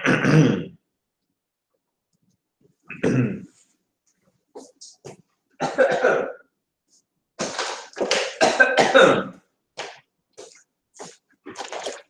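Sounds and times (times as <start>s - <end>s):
man clearing his throat: 0.0s - 0.8s, 2.9s - 3.5s, 5.6s - 6.4s, 8.3s - 9.4s
man coughing: 5.6s - 6.4s, 8.3s - 9.4s.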